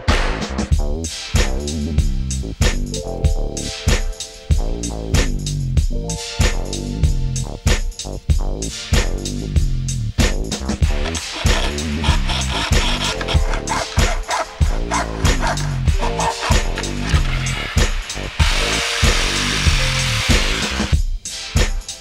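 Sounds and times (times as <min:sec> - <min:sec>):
background music with steady beat: 0:00.0 - 0:22.0
reciprocating saw cutting sheet metal: 0:10.8 - 0:21.0.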